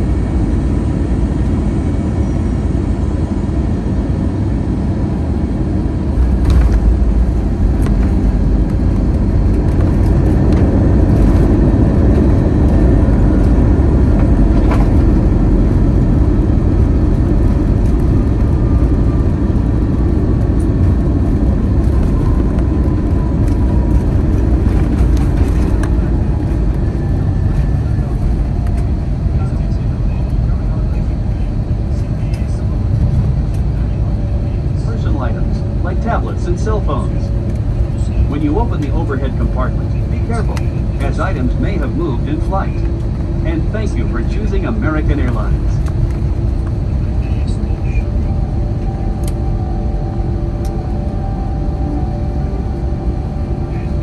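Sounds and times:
faint jet engine whine: 0.0s - 54.0s
low rumble of wheels and engines: 0.0s - 54.0s.

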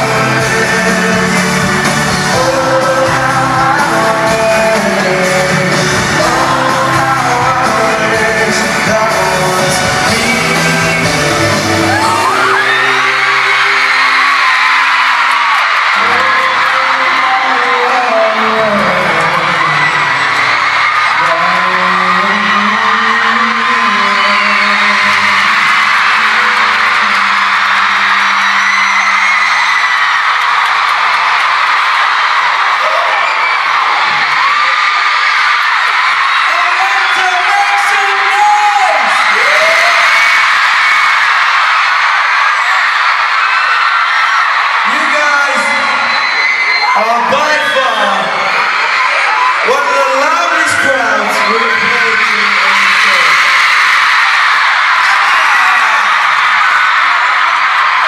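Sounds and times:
crowd screaming and cheering: 0.0s - 58.0s
live pop music: 0.0s - 58.0s.

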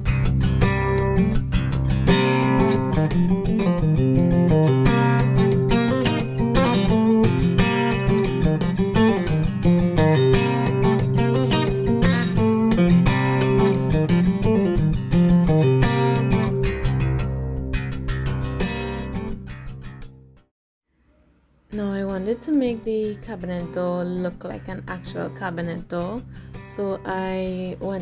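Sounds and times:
acoustic guitar picked and strummed: 0.0s - 20.5s, 21.7s - 28.0s.

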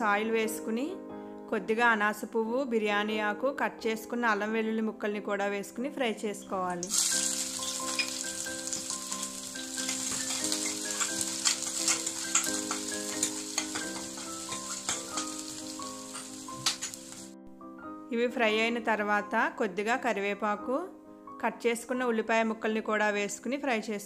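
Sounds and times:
soft instrumental music: 0.0s - 23.8s
garlic sizzling in hot oil: 6.8s - 17.4s
spatula stirring: 6.9s - 17.3s.

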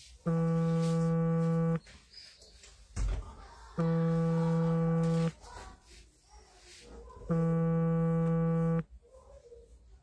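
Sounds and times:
low electronic buzzing tone: 0.3s - 1.8s, 3.8s - 5.3s, 7.3s - 8.8s.

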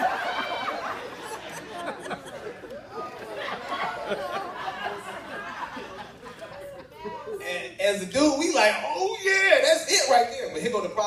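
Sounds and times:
audience chattering: 0.0s - 11.0s.

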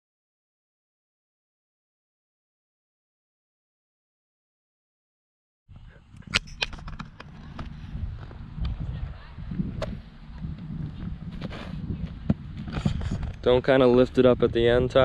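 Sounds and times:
wind rumbling on microphone: 5.7s - 15.0s
sharp clicks and knocks: 6.2s - 7.7s.

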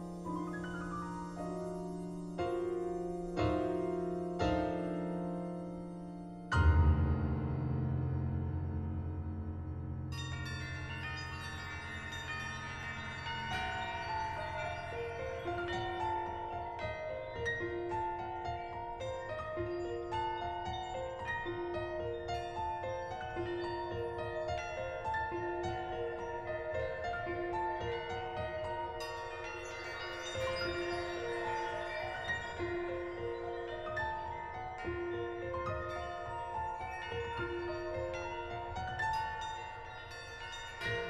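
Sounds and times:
piano notes: 0.0s - 41.0s
sustained bell-like electronic tones: 25.7s - 38.5s.

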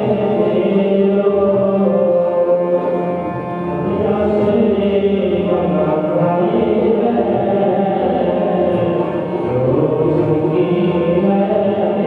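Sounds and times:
harmonium: 0.0s - 12.0s
voices chanting a hymn: 0.0s - 12.0s.

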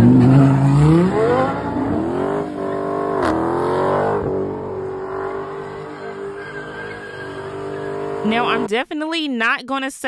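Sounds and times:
car engine revving high: 0.0s - 8.7s.

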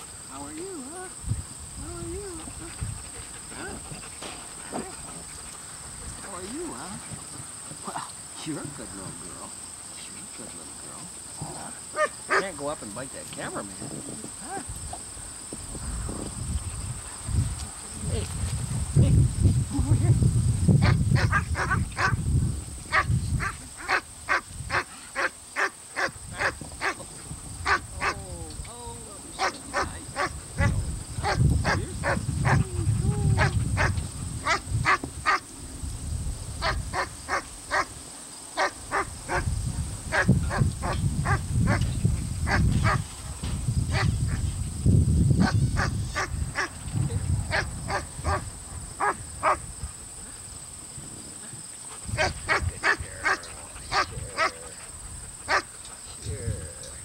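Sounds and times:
puppies barking and yipping: 29.3s - 35.5s, 52.0s - 56.0s.

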